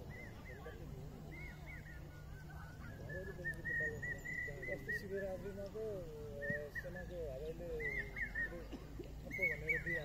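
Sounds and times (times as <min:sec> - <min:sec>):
birds chirping: 0:00.0 - 0:10.0
distant voices: 0:00.0 - 0:10.0.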